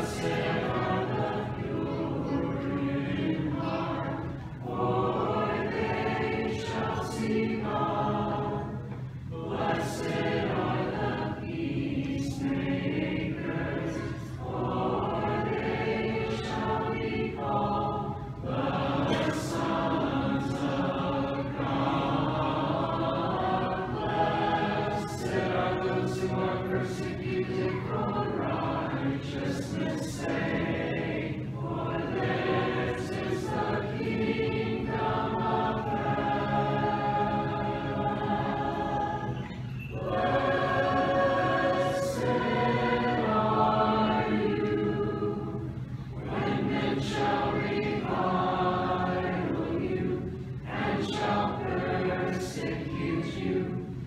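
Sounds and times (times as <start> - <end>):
choir chanting unaccompanied: 0.0 - 54.0.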